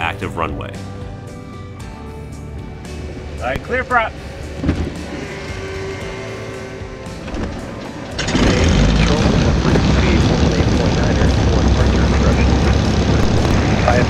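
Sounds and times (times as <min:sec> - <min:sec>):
propeller engine running: 0:02.8 - 0:14.0
aircraft engine cranking: 0:04.0 - 0:14.0.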